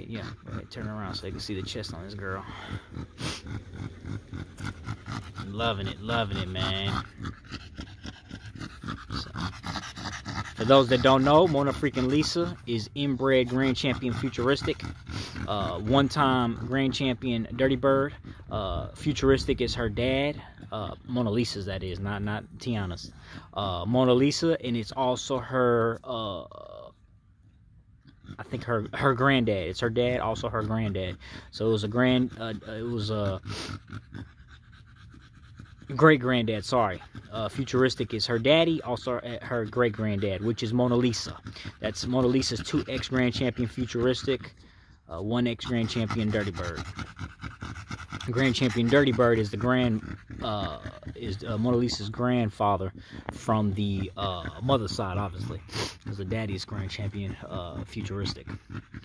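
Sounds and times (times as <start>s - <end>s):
dog panting rapidly: 0.0s - 59.0s.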